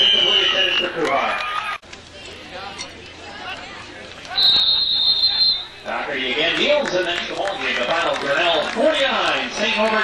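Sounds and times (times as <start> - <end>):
referee's whistle blast: 0.0 - 0.9, 4.3 - 5.8
low crowd murmur: 0.0 - 10.0.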